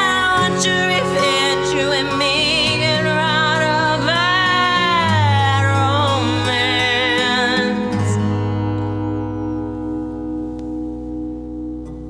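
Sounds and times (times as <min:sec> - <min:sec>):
acoustic guitar chord ringing: 0:00.0 - 0:12.0.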